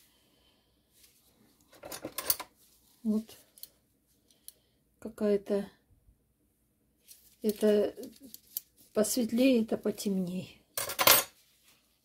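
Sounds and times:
metal spoons clinking in sink: 10.8s - 11.4s.

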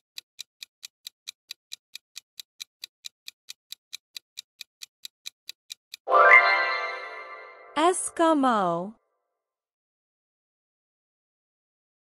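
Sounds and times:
fast clock ticking: 0.0s - 6.1s.

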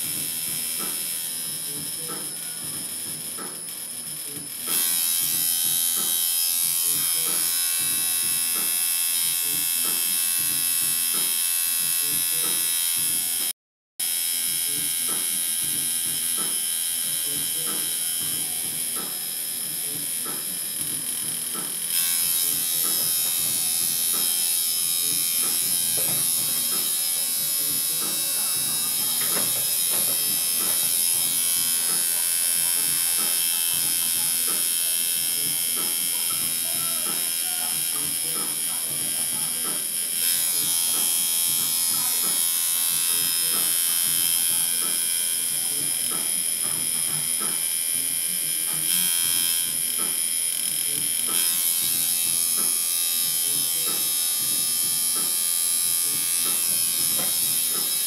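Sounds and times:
electric tattoo machine buzzing: 0.0s - 58.0s.

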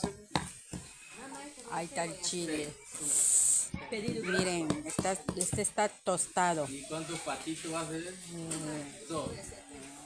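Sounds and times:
wooden pestle pounding in mortar: 4.0s - 5.8s.

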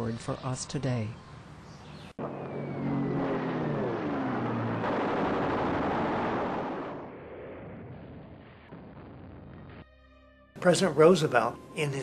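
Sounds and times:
propeller aircraft engine droning: 0.0s - 7.2s
loud rumbling blast: 2.2s - 9.8s.

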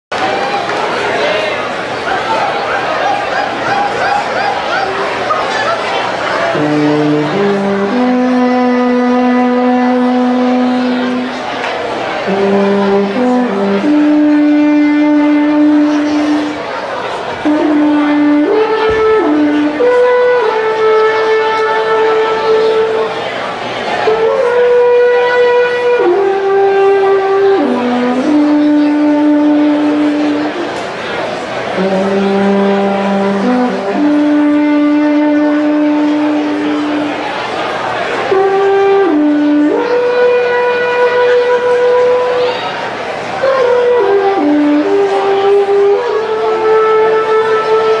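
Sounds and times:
alphorn holding long note: 3.6s - 48.0s
alphorn long held note: 6.4s - 11.5s, 12.3s - 16.7s, 31.7s - 37.4s, 38.3s - 42.8s.

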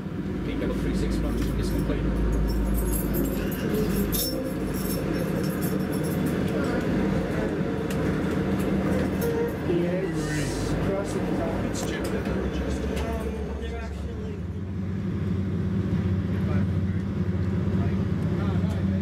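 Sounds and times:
deep locomotive engine hum: 0.0s - 19.0s
passing carriages rumbling: 0.0s - 19.0s
train running noise inside carriage: 0.0s - 19.0s.

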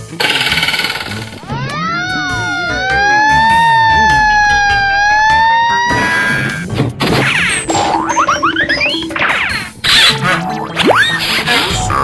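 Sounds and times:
cartoon buzzing rattle: 0.2s - 1.4s
tone gliding steeply down: 0.9s - 6.5s
siren-like two-note wail: 1.4s - 6.6s.

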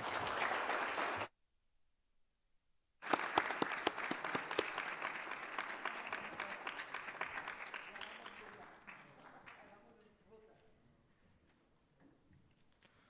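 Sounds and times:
audience applause: 0.0s - 1.3s, 3.0s - 9.6s.

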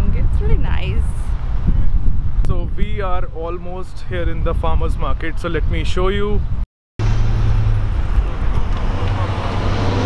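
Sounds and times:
car passing by: 7.0s - 10.0s
road traffic rumble: 7.0s - 10.0s.

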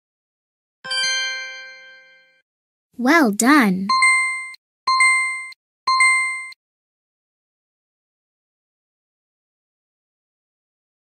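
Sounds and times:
electronic chime dings: 3.9s - 6.6s.

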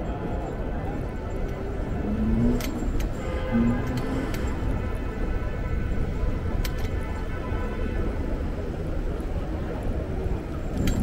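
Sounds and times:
cars rumbling: 0.0s - 11.0s.

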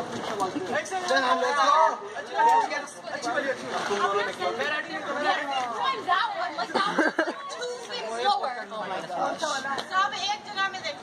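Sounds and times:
young male voices talking: 0.2s - 10.2s.

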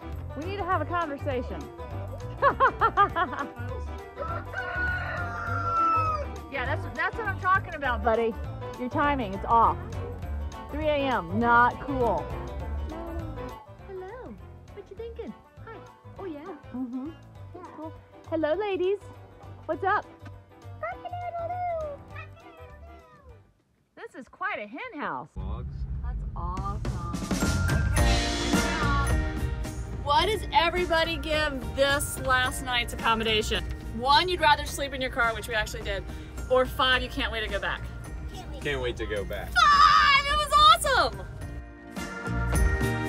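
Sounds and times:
background music with low beat: 0.0s - 22.4s, 25.4s - 43.0s
rooster crowing: 4.2s - 6.4s.

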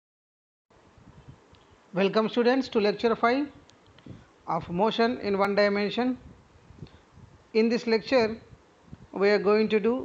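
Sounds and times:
faint microphone hiss: 0.7s - 10.0s.

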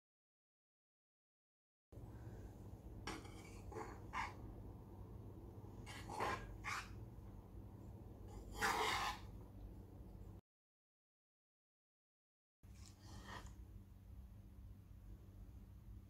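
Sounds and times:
faint low hum: 2.0s - 10.4s, 12.7s - 16.0s
metal spoon scraping a pan: 3.0s - 4.5s, 5.8s - 7.0s, 8.3s - 9.4s.

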